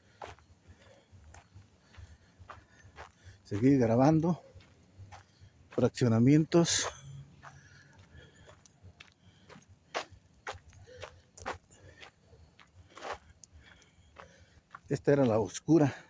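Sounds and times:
footsteps walking: 0.0 - 16.0.

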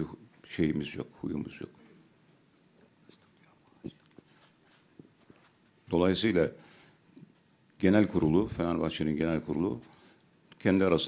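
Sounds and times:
man speaking: 0.0 - 2.0, 5.8 - 6.6, 7.8 - 9.9, 10.6 - 11.0
faint mouth clicks: 2.6 - 5.3.

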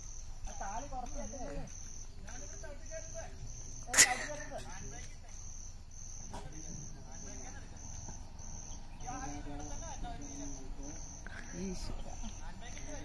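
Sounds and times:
insect chirping: 0.0 - 13.0.

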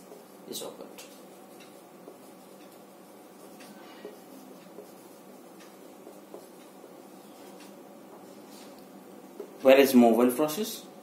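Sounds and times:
marker writing on whiteboard: 0.0 - 9.7.

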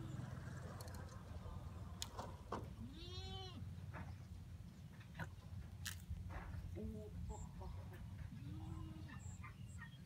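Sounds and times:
goat bleating: 2.8 - 3.7.

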